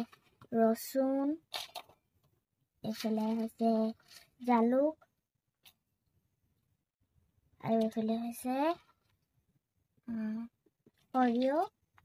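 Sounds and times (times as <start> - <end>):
person talking: 0.0 - 1.5, 2.8 - 5.0, 7.6 - 8.8, 10.0 - 11.8.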